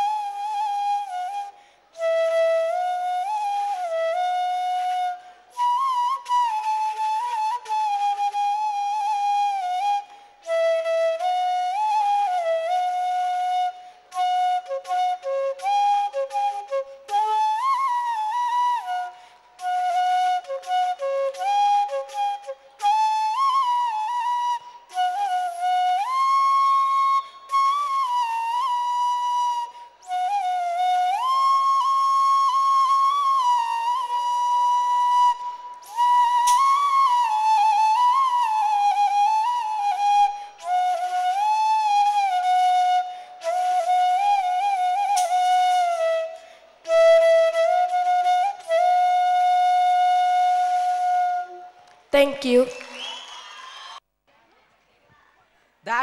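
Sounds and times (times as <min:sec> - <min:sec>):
solo bamboo flute melody: 0:00.0 - 0:54.0.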